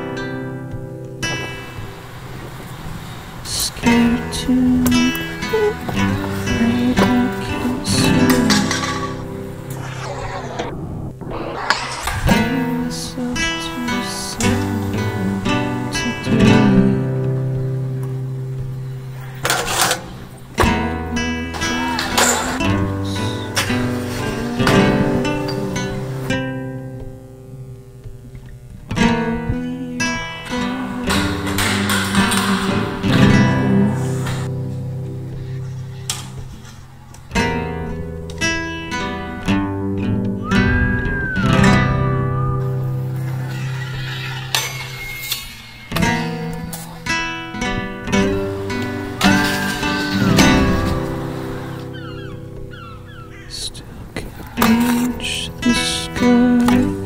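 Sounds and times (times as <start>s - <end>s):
flamenco acoustic guitar: 0.0s - 10.0s, 12.2s - 57.0s.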